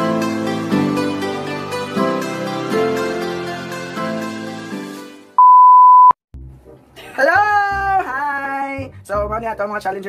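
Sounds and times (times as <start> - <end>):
music: 0.0 - 5.4, 6.4 - 10.0
high-pitched test tone beep: 5.4 - 6.2.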